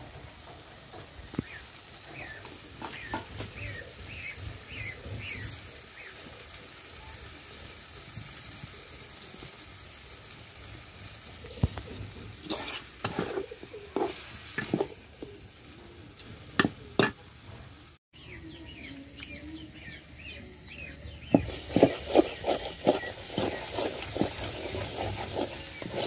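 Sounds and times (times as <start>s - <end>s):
meat sizzling in a pan: 0.0s - 18.0s, 19.8s - 26.0s
metal ladle scraping a pan: 12.3s - 15.0s, 21.3s - 26.0s.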